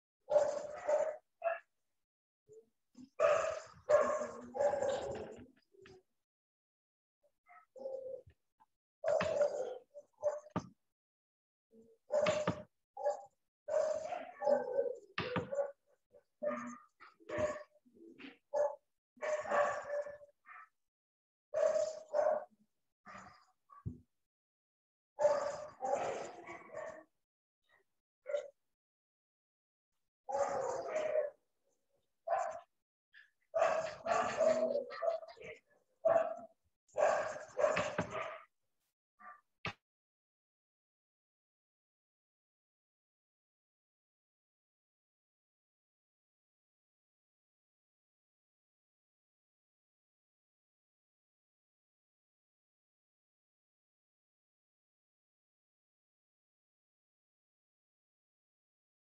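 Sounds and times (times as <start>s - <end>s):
dog barking: 0.3s - 1.7s, 3.0s - 6.0s, 7.4s - 8.4s, 9.0s - 10.7s, 11.8s - 20.8s, 21.6s - 23.8s, 25.2s - 28.6s, 30.3s - 38.5s, 39.2s - 39.4s.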